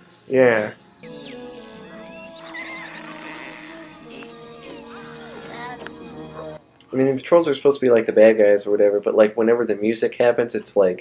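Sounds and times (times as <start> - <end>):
light film music score: 0.0 - 10.6
high wavering creature squeals: 1.0 - 6.6.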